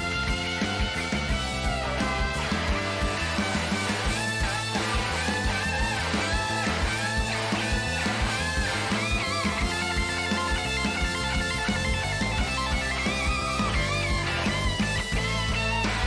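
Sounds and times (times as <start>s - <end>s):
blues-rock band playing: 0.0s - 16.0s
electric guitar lead with bent notes: 0.0s - 16.0s.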